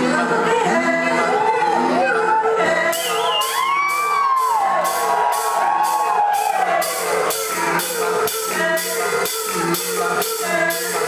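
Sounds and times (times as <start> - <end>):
voices singing sliding notes: 0.0 - 11.0.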